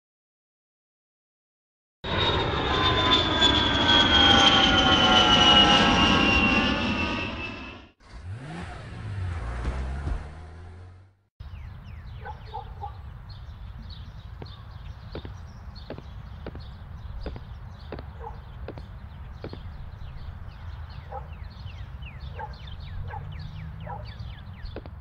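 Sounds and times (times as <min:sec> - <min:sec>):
jet airliner engines whining: 0:02.1 - 0:10.8, 0:11.8 - 0:25.0.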